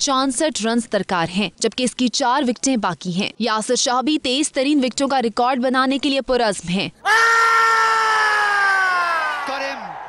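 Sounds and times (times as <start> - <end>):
players shouting an appeal: 7.0 - 10.0
stadium crowd noise: 7.0 - 10.0.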